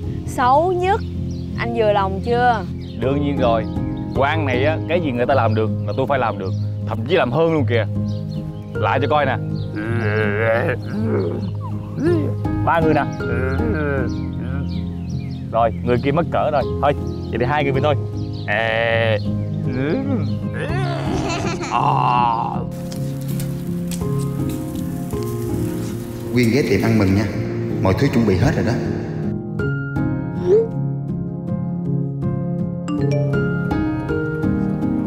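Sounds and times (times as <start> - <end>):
background music: 0.0 - 35.0
person wordless vocal noise: 9.7 - 12.4, 13.2 - 14.8, 18.5 - 22.7
grill sizzling and crackling: 20.9 - 27.6.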